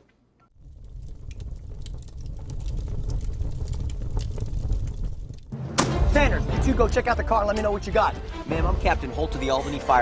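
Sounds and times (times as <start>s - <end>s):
sharp clicks and crackles: 0.6s - 5.5s
low rumble: 0.6s - 5.6s.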